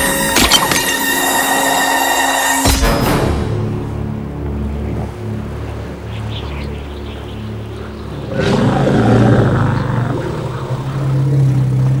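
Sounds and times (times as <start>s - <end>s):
mammoth deep bellow: 0.0s - 12.0s
tense film music: 0.0s - 12.0s.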